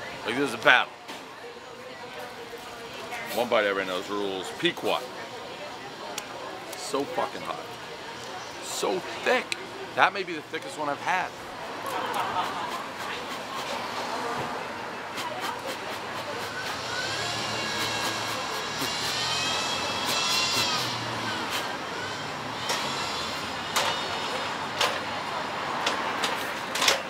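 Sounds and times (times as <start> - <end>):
low traffic rumble: 0.0 - 27.0.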